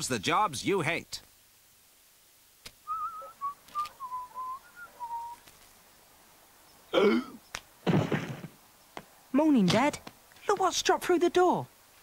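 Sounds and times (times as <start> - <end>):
person whistling a tune: 2.9 - 5.4.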